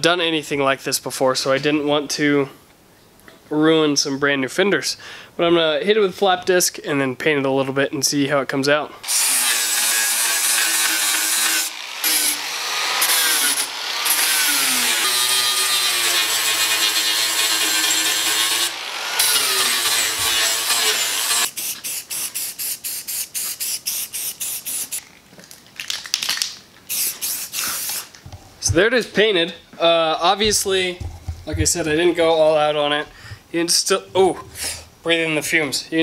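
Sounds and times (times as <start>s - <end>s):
angle grinder grinding steel: 9.0s - 22.3s.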